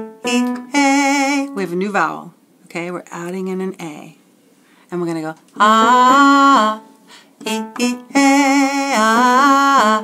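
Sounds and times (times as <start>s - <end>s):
woman singing vocal exercise: 0.2s - 2.3s, 5.0s - 10.0s.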